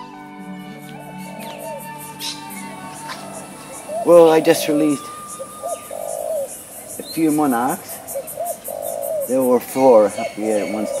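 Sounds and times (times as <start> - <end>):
bird calling: 0.0 - 11.0.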